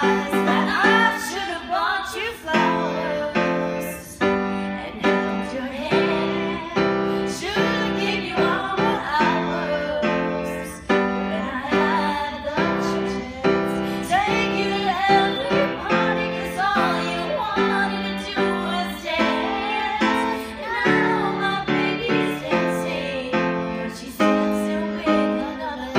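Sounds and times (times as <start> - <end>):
grand piano chords: 0.0 - 25.9
woman singing into microphone: 0.0 - 25.9.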